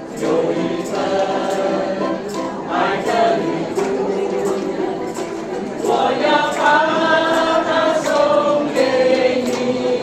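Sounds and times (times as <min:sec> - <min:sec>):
group singing in unison: 0:00.0 - 0:10.0
ukuleles strummed: 0:00.0 - 0:10.0.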